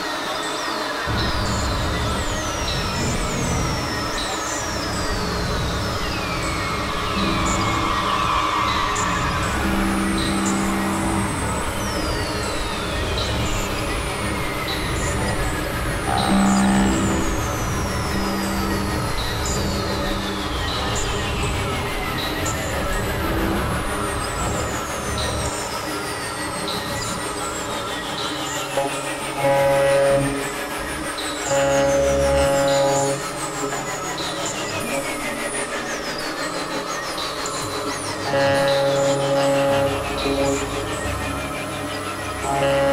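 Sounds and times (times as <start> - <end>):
sustained synthesizer tones: 1.1 - 26.0, 28.6 - 35.2, 37.6 - 42.9
falling synthesizer pitch sweeps: 6.5 - 21.3, 31.5 - 33.4, 38.2 - 42.9.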